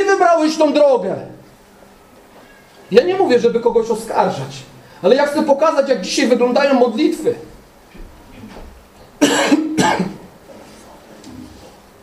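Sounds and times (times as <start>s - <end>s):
man coughing: 9.2s - 10.3s.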